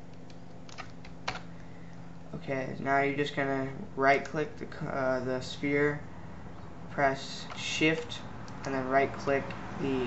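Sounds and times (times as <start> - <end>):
keyboard key presses: 0.0 - 1.5
steady low hum: 0.0 - 10.0.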